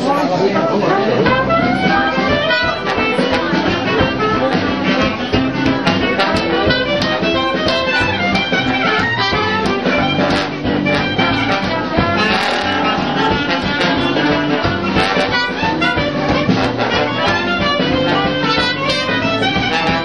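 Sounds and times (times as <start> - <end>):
jazz band playing: 0.0 - 20.0
trombone: 0.0 - 20.0
trumpet: 0.0 - 20.0.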